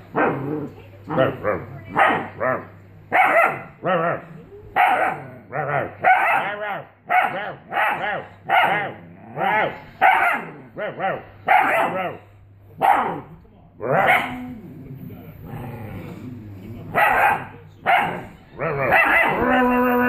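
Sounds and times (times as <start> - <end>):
puppy barking: 1.1 - 4.2, 4.8 - 12.2, 12.8 - 13.3, 13.9 - 14.4, 16.9 - 19.9.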